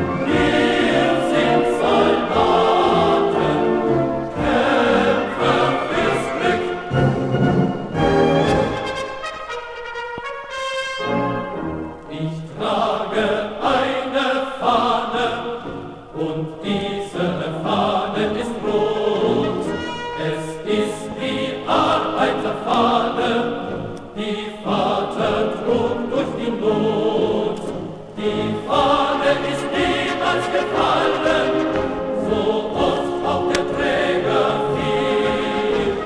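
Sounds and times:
choir singing a marching song: 0.0s - 9.1s, 11.1s - 36.0s.

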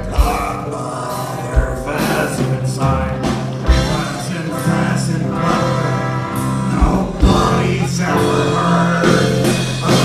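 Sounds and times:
live rock band with singing: 0.0s - 10.0s.

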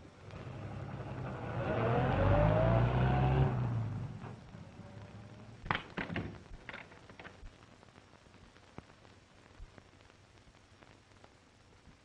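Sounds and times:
car engine accelerating: 0.2s - 5.6s.

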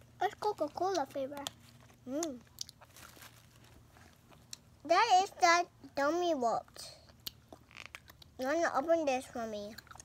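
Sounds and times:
child speaking: 0.2s - 2.4s, 4.8s - 7.1s, 8.4s - 9.9s
children chewing: 0.2s - 4.9s, 6.7s - 8.4s, 9.6s - 10.0s.

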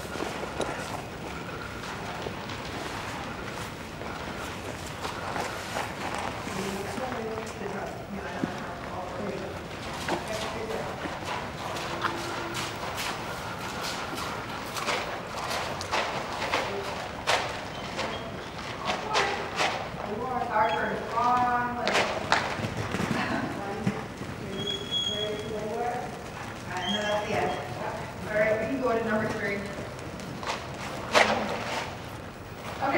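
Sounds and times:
hooves scraping plastic tarp: 0.0s - 32.9s
horse hoofbeats crackling on plastic: 0.0s - 32.9s.

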